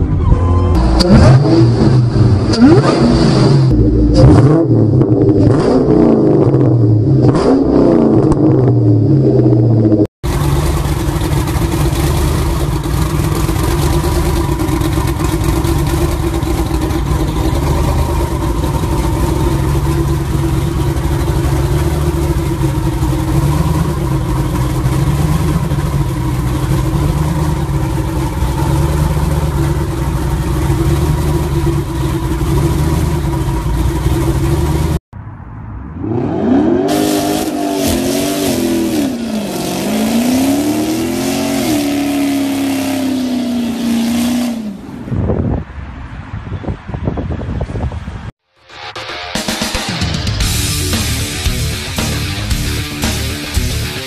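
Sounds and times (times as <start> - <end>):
engine revving: 0.7 - 35.0, 35.8 - 44.9, 48.6 - 54.0
engine running steadily: 8.2 - 35.0, 49.6 - 54.0.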